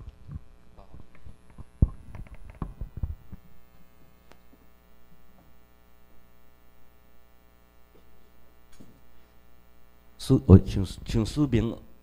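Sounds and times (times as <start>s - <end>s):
electrical mains hum: 0.0s - 12.0s
dull low thumps: 1.8s - 3.6s.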